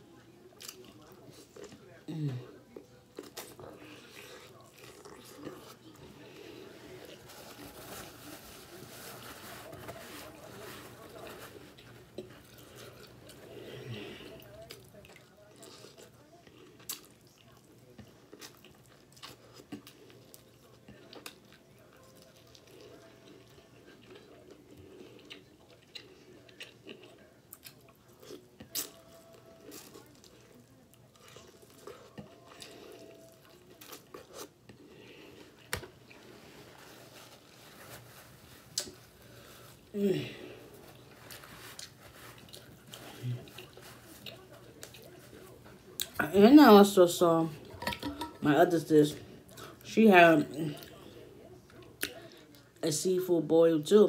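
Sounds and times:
person chewing food: 0.5 - 46.2, 50.7 - 52.7.

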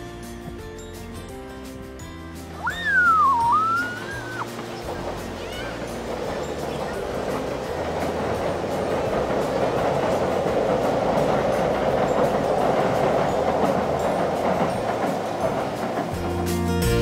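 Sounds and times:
train rolling across steel bridge: 0.0 - 17.0.

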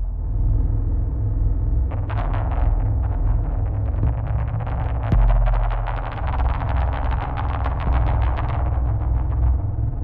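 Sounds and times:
deep synthesizer bass: 1.9 - 10.0.

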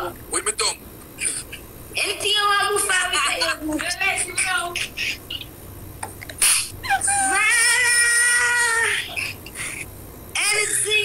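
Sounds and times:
high-pitched wavering cry: 6.4 - 9.8.

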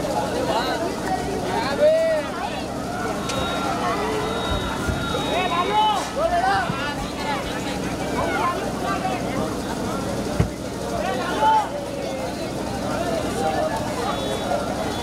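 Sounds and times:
crowd chatter: 0.0 - 15.0.

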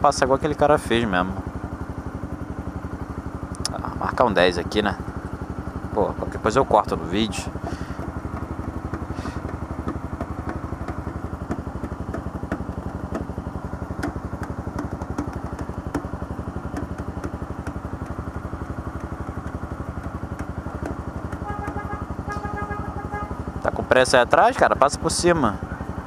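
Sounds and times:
motorcycle engine idling: 0.0 - 26.0.

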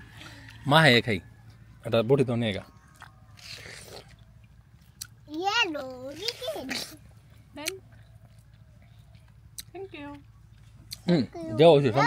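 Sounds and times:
crunch of raw fruit: 2.6 - 11.2.

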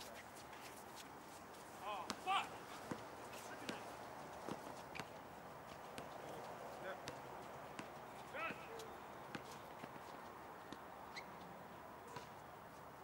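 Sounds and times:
player calling out: 1.8 - 2.5
footfalls on hard court: 2.0 - 5.1.

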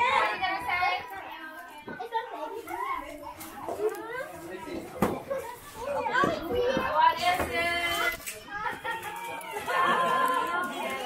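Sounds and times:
children and adults talking: 0.0 - 11.0.

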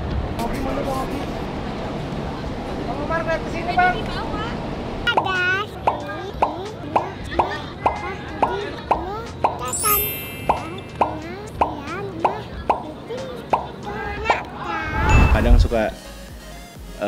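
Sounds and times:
cartoon plop sounds: 5.1 - 14.5.

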